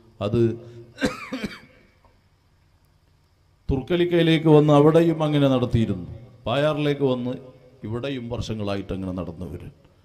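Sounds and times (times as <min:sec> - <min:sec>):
man clearing throat: 0:01.0 - 0:02.0.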